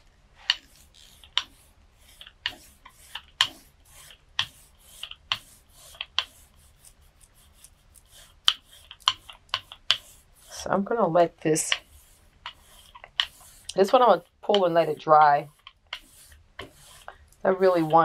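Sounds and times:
faint rubbing hiss: 0.0 - 18.0.

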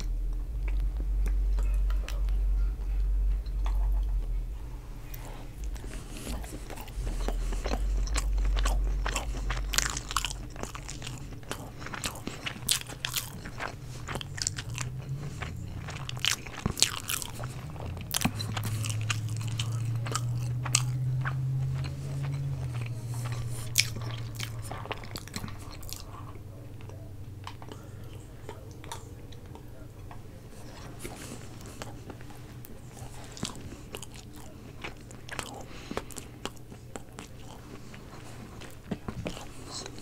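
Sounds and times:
chewing food: 0.0 - 40.0
low steady hum: 0.0 - 40.0.

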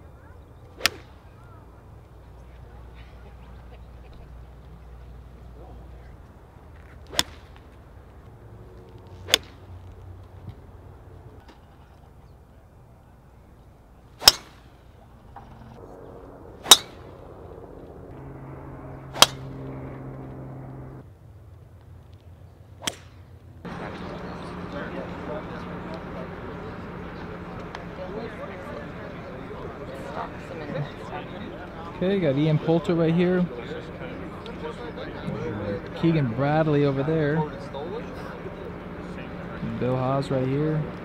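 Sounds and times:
golf club striking ball: 7.1 - 7.5, 9.3 - 9.6, 14.2 - 14.6, 16.6 - 17.0, 19.0 - 21.0.

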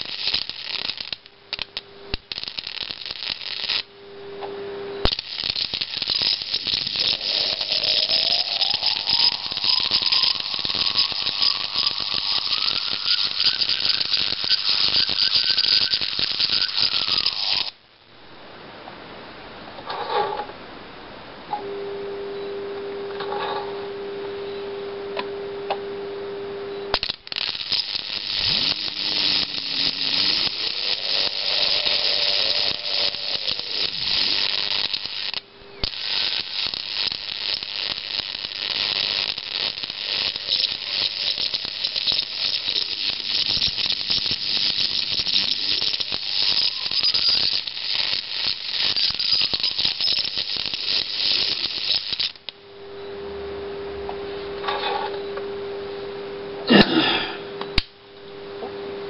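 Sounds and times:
electric arc crackling hiss: 0.0 - 18.8, 26.9 - 52.9
transformer whine: 6.5 - 17.7, 21.5 - 34.9.

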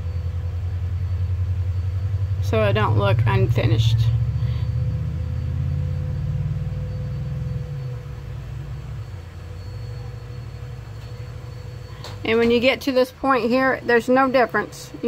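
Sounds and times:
low rumble: 0.0 - 12.4
faint steady hum: 0.0 - 15.0.

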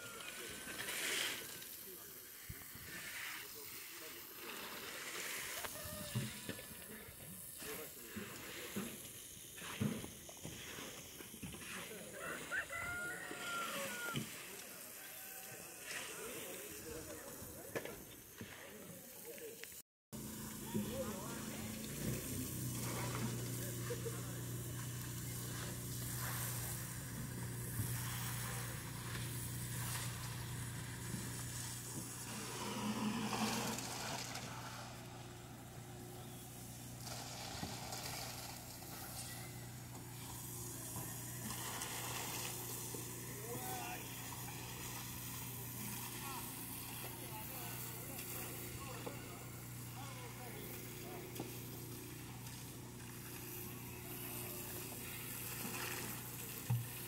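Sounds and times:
diffuse hiss of activity: 0.0 - 57.0
work crew voices: 0.0 - 57.0.

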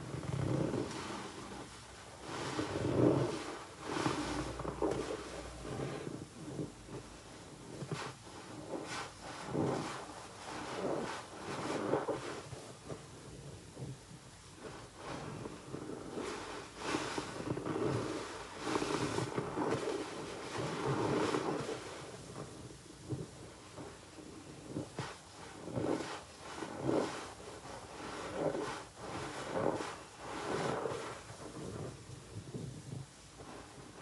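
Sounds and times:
sponges squelching in suds: 23.8 - 34.0.

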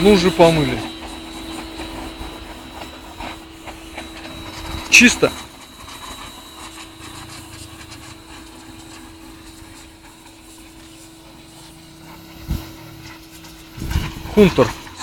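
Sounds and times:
pressure washer humming and hissing: 0.0 - 15.0.

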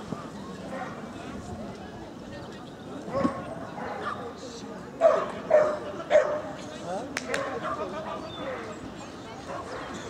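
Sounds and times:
dog barking: 5.0 - 6.4.

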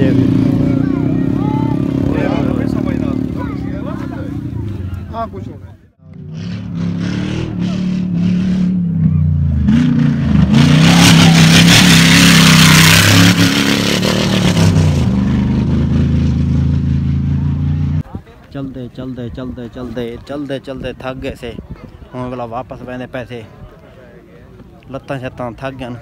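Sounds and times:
car engine at high revs: 6.2 - 18.0.

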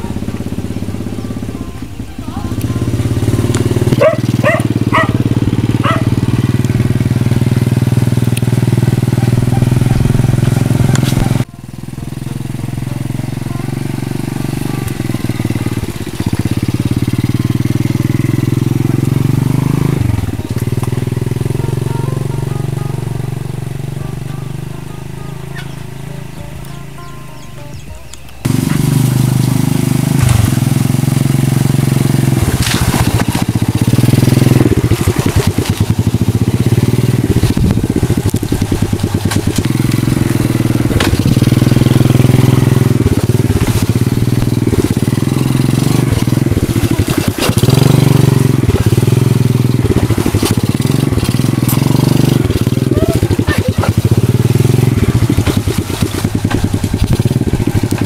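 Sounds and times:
rattles from bumpy ride: 0.0 - 58.0
small motorcycle engine: 0.0 - 58.0.

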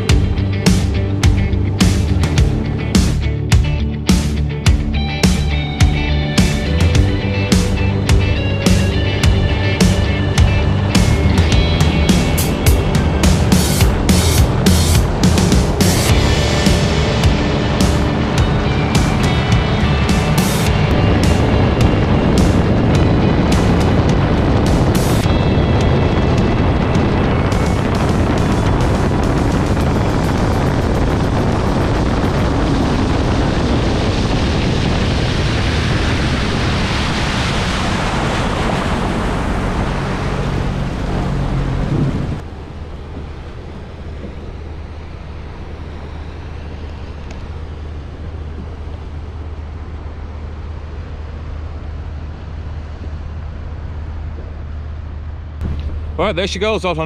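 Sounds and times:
music: 0.0 - 35.9
personal watercraft engine: 0.0 - 57.0
wind on microphone: 5.1 - 56.4.

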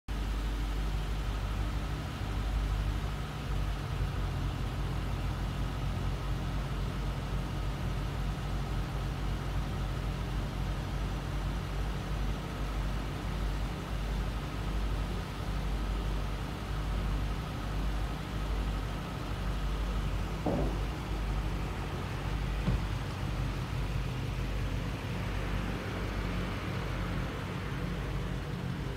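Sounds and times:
car engine idling: 0.1 - 28.9.

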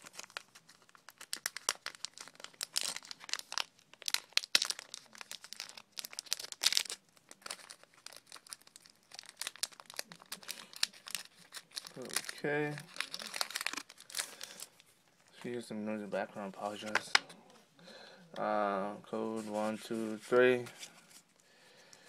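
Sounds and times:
foil wrapper crinkling: 0.0 - 14.9.

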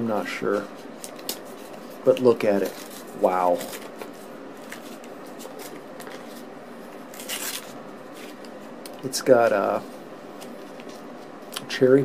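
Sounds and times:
faint steady hiss: 0.0 - 12.0
paper wrapper crinkling: 0.8 - 9.1.

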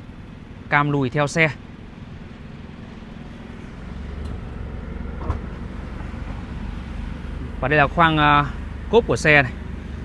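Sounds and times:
car tailgate opening: 5.2 - 5.6.

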